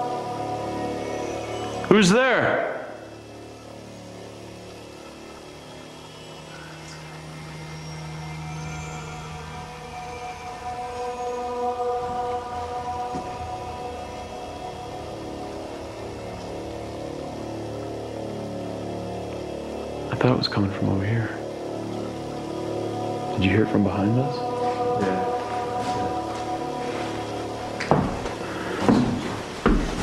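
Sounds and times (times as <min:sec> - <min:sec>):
low droning suspense music: 0:00.0 - 0:30.0.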